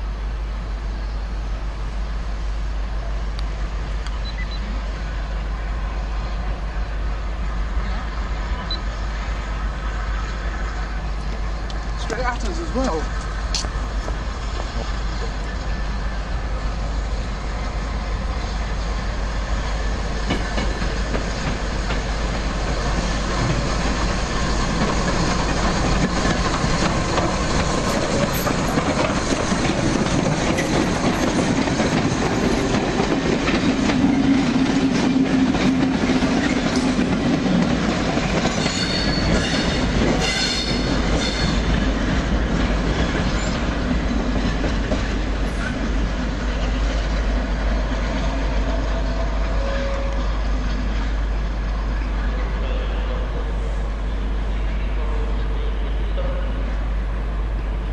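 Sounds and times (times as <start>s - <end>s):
train wheels clacking over rail joints: 20.2s - 51.0s
high squeal of wheel flanges: 38.5s - 41.7s.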